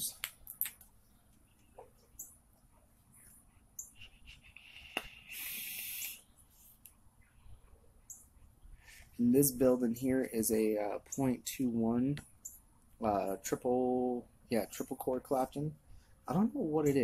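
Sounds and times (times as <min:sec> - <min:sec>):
vape hiss: 0:04.6 - 0:06.3.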